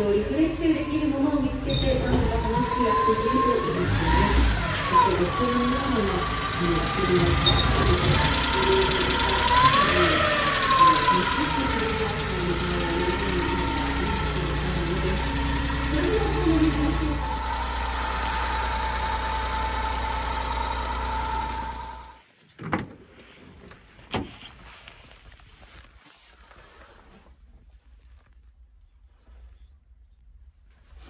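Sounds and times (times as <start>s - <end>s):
person talking: 0.0s - 17.4s
small engine idling: 2.4s - 22.2s.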